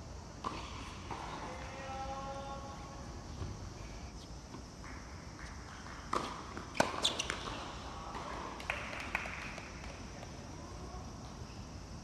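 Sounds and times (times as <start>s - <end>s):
tennis ball bouncing: 4.5s - 10.0s
tennis ball struck by rackets: 6.1s - 9.4s.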